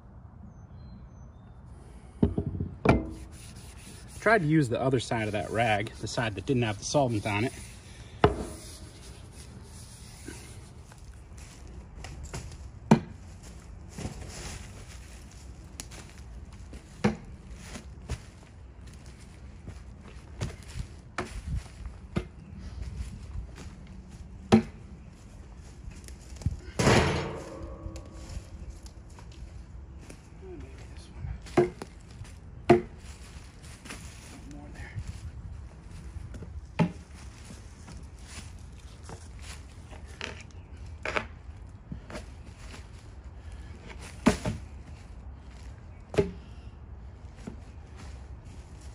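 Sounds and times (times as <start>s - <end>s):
steel head striking logs: 2.3s - 3.4s, 8.2s - 8.6s, 26.8s - 28.4s, 32.7s - 32.9s.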